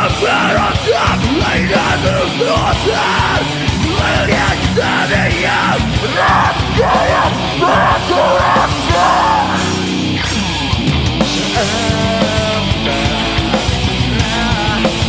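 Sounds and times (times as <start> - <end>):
vocalist yelling into microphone: 0.0 - 9.9
bass guitar: 0.0 - 15.0
drums: 0.0 - 15.0
electric guitars: 0.0 - 15.0.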